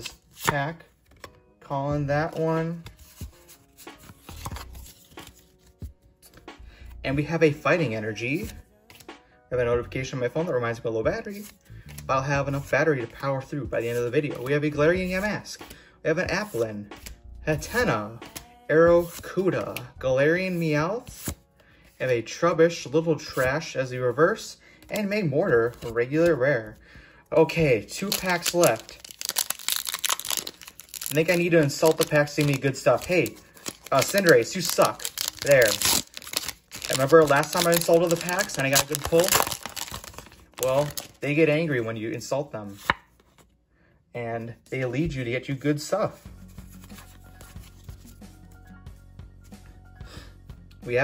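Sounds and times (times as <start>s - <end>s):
faint background music: 0.0s - 51.0s
cards clicking: 28.0s - 41.2s
foil wrapper crinkling and tearing: 28.0s - 41.2s.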